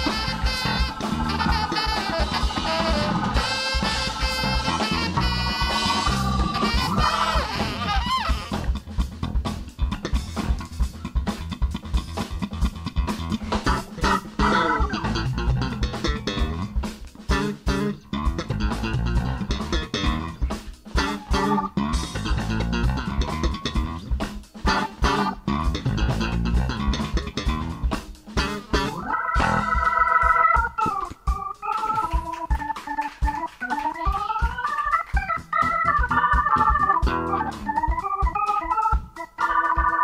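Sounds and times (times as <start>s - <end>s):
electric bass guitar line: 0.0s - 40.0s
funk band playing: 0.0s - 40.0s.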